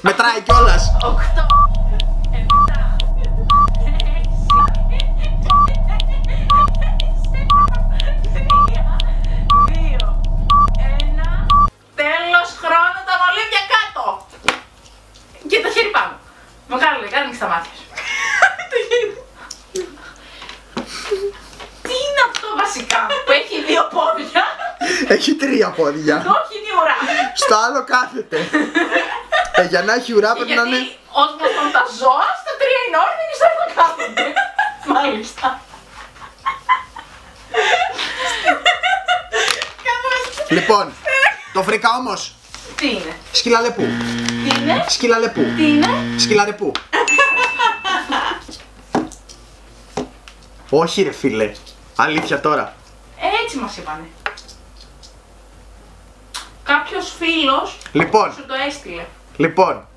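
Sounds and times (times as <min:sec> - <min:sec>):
low steady drone: 0:00.5 - 0:11.7
short high beep: 0:00.5 - 0:11.7
ticking clicks: 0:00.5 - 0:11.7.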